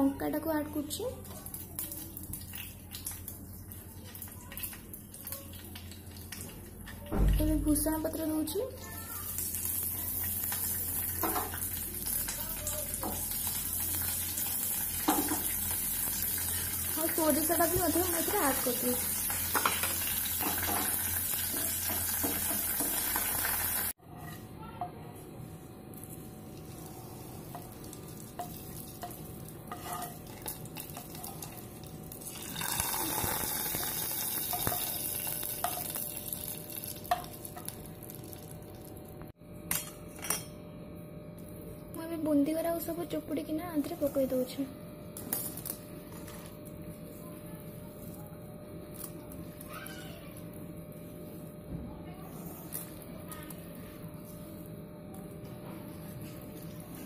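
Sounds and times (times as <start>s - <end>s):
spices sizzling in hot oil: 8.5s - 24.0s, 26.0s - 39.0s.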